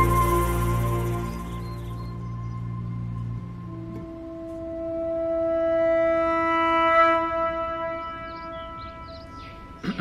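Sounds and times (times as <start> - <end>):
horn-like drone tone: 0.0 - 9.8.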